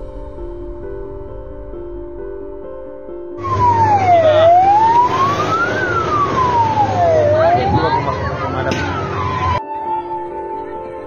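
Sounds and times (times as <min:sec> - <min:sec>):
fire engine siren wailing: 0:03.4 - 0:10.6.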